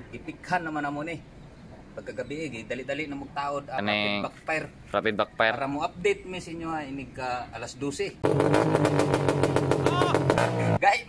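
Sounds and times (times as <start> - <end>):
motorcycle engine popping exhaust: 8.2 - 10.8.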